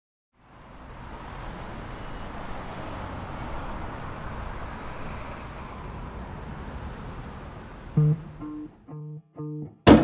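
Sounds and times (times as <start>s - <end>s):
street traffic noise: 0.4s - 10.0s.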